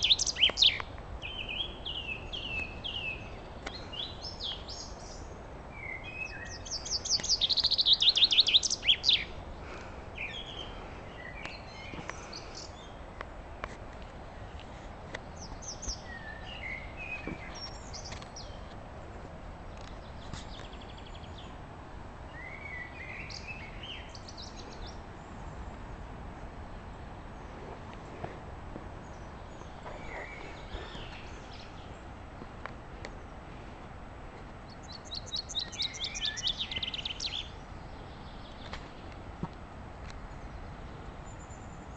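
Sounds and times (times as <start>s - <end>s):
songbird trilling: 0.0s - 9.4s, 29.1s - 32.0s, 34.7s - 38.7s
songbirds chirping and trilling: 0.0s - 41.9s
steady low rumble: 0.0s - 41.9s.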